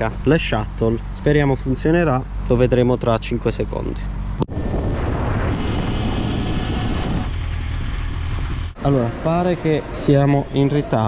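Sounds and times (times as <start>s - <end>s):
motorcycle engine rumble: 4.0s - 9.1s
wind buffeting microphone: 4.4s - 8.8s.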